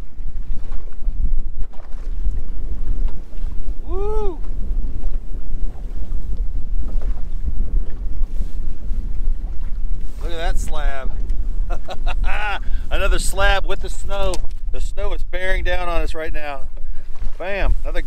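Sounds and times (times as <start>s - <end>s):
choppy lake water hiss: 0.0s - 18.0s
wind buffeting microphone: 0.0s - 18.0s.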